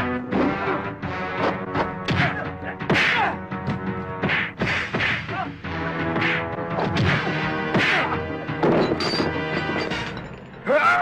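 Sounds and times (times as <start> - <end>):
dramatic background music: 0.0 - 11.0
punch hits: 4.2 - 5.4.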